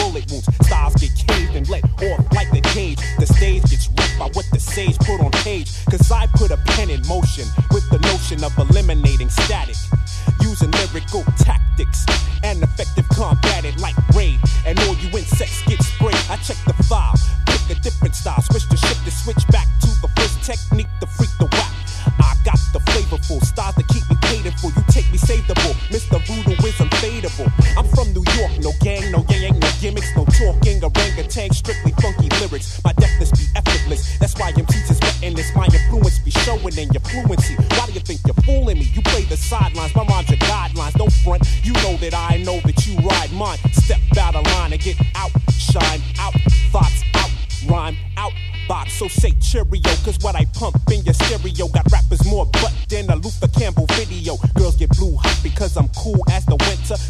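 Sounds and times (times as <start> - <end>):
heavy repeating bass line: 0.0 - 57.0
rapping over a beat: 0.0 - 57.0.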